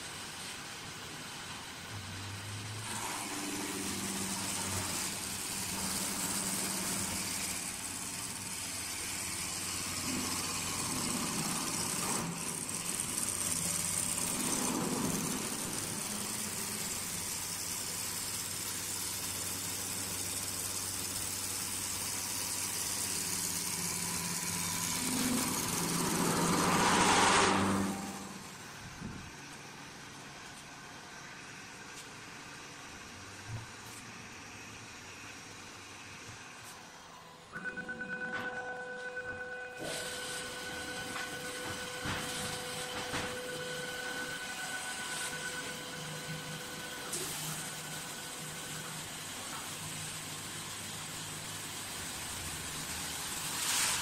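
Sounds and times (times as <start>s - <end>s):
lathe motor hum: 0.0s - 54.0s
cutter shaving wood: 2.8s - 28.6s, 39.8s - 54.0s.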